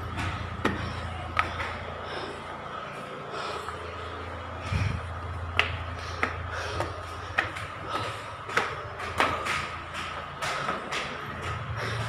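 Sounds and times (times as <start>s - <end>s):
slipper footsteps on stairs: 0.0s - 2.0s, 4.6s - 12.0s
steady low hum: 0.0s - 12.0s.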